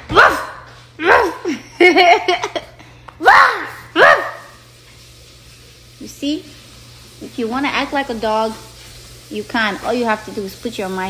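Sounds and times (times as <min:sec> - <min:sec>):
dog-like bark: 0:00.1 - 0:01.4, 0:04.0 - 0:04.6.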